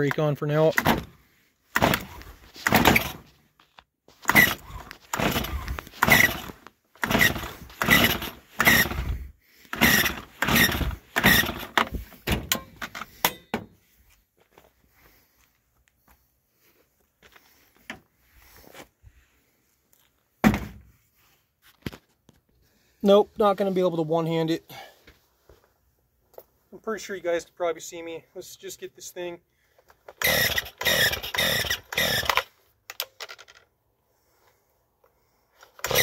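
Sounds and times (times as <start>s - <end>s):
chainsaw starter cord pulls: 1.7s - 3.4s, 4.1s - 13.4s, 29.8s - 33.6s, 35.6s - 36.0s.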